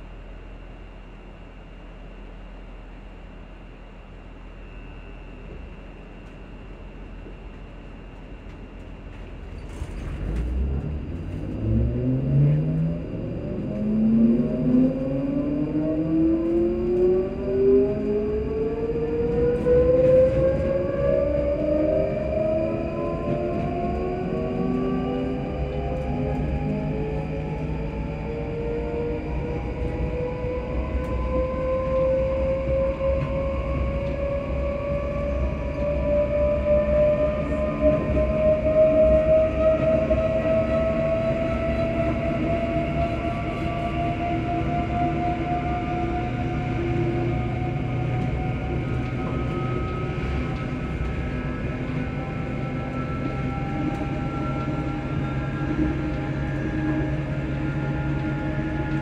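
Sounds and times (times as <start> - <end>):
wheels rumbling on track: 5.1 - 59.0
train traction motors whining: 5.4 - 59.0.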